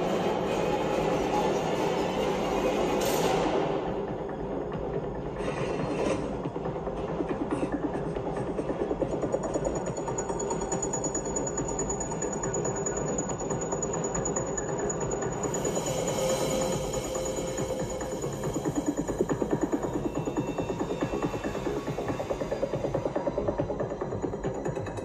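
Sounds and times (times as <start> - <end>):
tense film score music: 0.0 - 25.0
thin high whine: 9.9 - 24.2.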